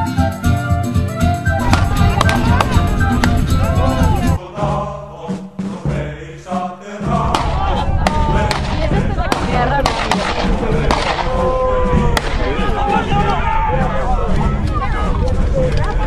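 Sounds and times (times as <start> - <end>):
song playing: 0.0 - 15.8
crowd of men shouting: 7.1 - 8.9, 10.6 - 15.2
gunshots: 7.3 - 11.5, 12.2 - 12.7.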